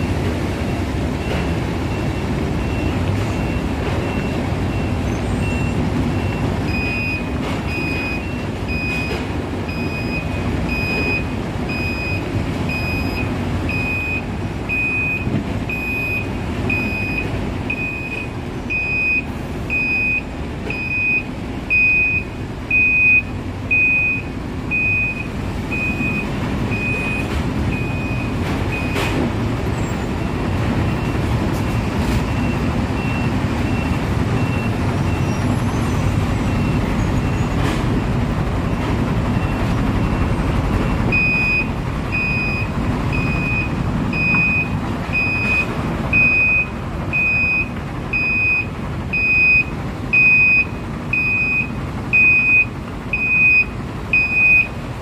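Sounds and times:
heavy machinery rumble: 0.0s - 55.0s
truck reversing alarm beeping: 0.0s - 55.0s.

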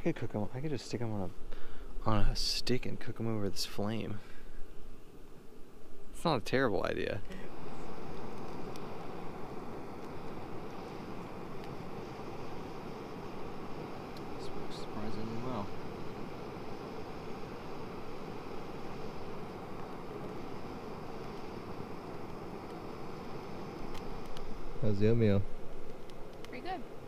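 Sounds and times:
stove burner hissing: 0.0s - 27.0s.

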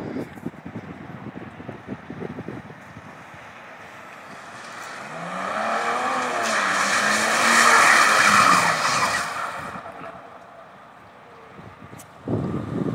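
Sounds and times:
tyres sliding through water: 4.0s - 10.7s
diesel engine revving hard: 4.9s - 9.9s.

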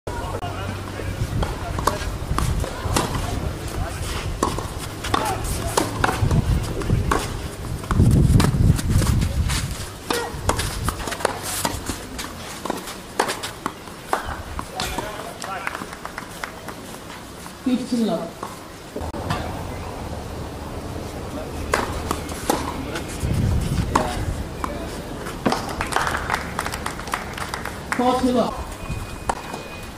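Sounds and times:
racquets striking tennis ball: 0.8s - 19.6s, 21.4s - 28.6s.

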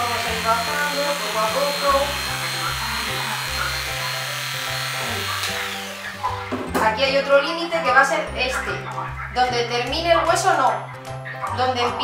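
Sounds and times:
electric clipper whining: 0.0s - 7.2s
background music with bass: 0.0s - 12.0s.

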